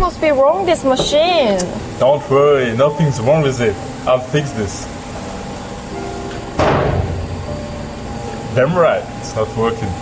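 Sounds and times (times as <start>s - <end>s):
ventilation hum: 0.0s - 10.0s
sudden bang: 6.6s - 7.4s.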